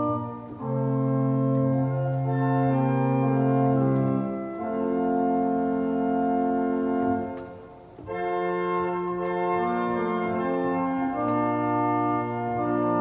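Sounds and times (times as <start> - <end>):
church organ chords: 0.0 - 13.0.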